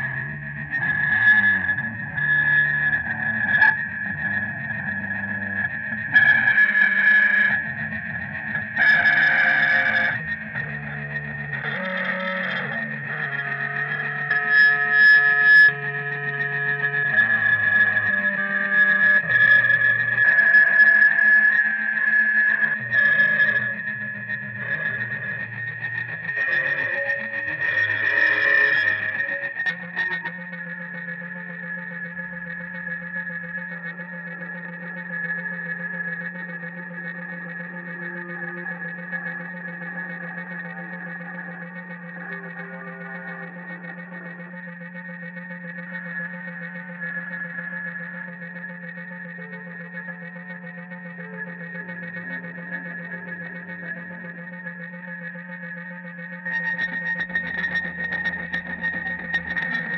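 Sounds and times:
distorted electric guitar noise: 0:00.0 - 0:59.9
steady high whine: 0:00.0 - 0:59.9.

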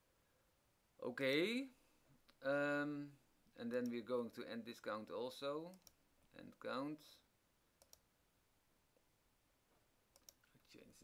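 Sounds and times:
computer mouse clicks: 0:07.8 - 0:08.0, 0:10.1 - 0:10.5.

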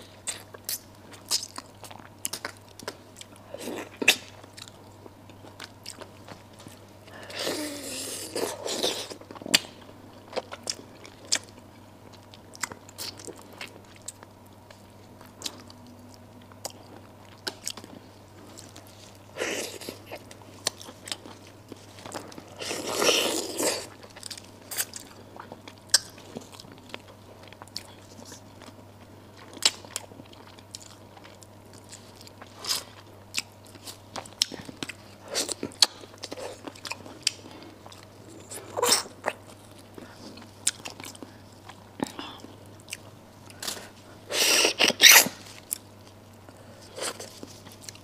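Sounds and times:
crunching of chewing small bones: 0:00.0 - 0:48.0.

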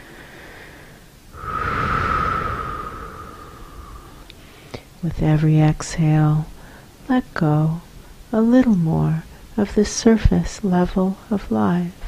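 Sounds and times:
deep breath: 0:00.0 - 0:04.9.

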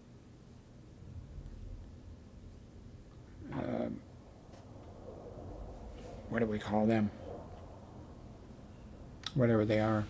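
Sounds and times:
low room hum: 0:00.0 - 0:10.0
man saying uh: 0:03.4 - 0:04.0.

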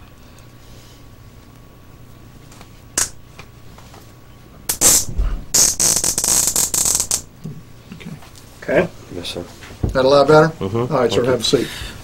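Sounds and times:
cuffs ratcheting zip: 0:04.7 - 0:07.2.

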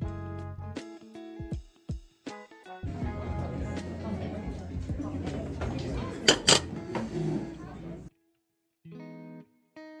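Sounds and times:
background music: 0:00.0 - 0:07.0
murmur of voices: 0:02.8 - 0:08.1
cutlery clinking on a plate: 0:05.7 - 0:07.1.

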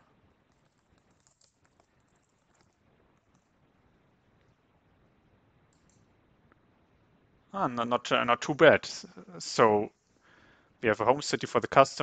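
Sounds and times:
computer mouse click: 0:05.7 - 0:06.1.

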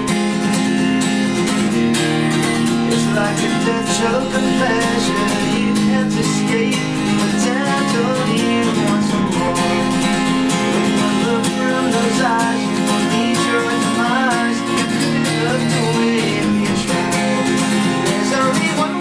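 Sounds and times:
acoustic guitar strummed: 0:00.0 - 0:19.0.

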